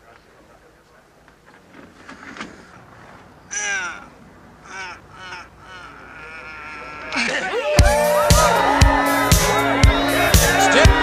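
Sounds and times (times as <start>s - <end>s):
crowd murmur: 2.5s - 11.0s
men crying out with effort: 3.4s - 11.0s.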